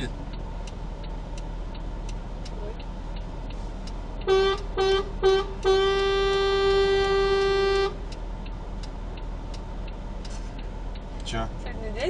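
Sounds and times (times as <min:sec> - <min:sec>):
car horn honking: 0:04.2 - 0:08.0.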